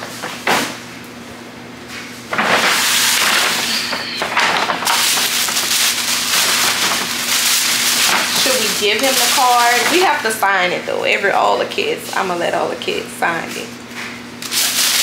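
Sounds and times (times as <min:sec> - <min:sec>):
tissue paper crinkling: 0:02.3 - 0:10.3, 0:14.4 - 0:15.0.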